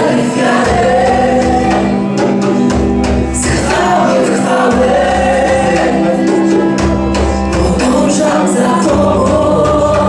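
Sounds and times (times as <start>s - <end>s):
group singing worship music: 0.0s - 10.0s
sustained chords and bass: 0.0s - 10.0s.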